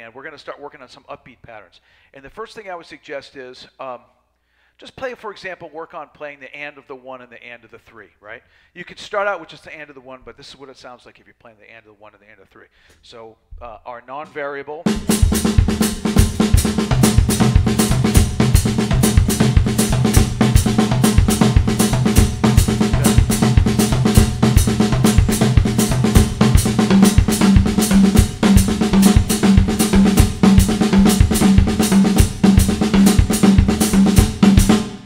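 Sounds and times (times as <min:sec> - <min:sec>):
drum kit groove: 0:14.9 - 0:35.0.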